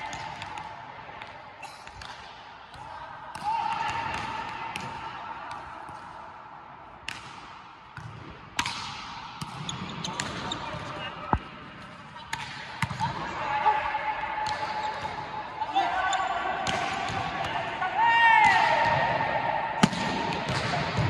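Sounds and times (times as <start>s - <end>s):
volleyball slaps: 7.0s - 10.5s, 12.2s - 13.2s, 16.6s - 17.6s, 19.8s - 21.0s.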